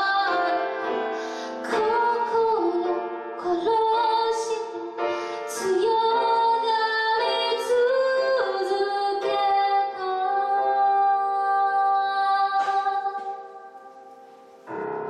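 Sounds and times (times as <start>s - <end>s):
woman singing a ballad: 0.0s - 13.8s
grand piano accompaniment: 0.0s - 15.0s
woman taking a breath: 1.2s - 1.6s.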